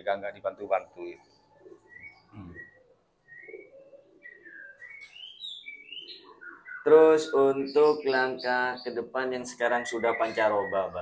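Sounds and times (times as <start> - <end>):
birds chirping: 0.0 - 11.0
faint pigeon cooing: 0.8 - 11.0.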